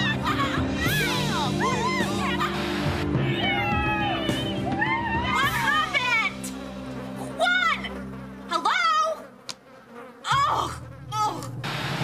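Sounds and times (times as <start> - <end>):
background music: 0.0 - 12.0
cartoon flies buzzing: 5.3 - 12.0.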